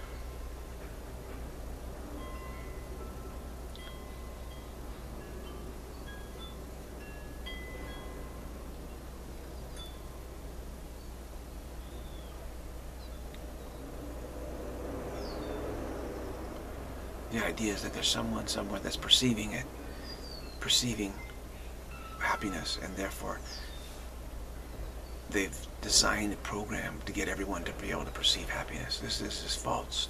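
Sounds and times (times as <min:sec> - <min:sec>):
wind chimes ringing: 0:00.0 - 0:11.2, 0:17.0 - 0:23.9
background hiss and hum: 0:00.0 - 0:30.0.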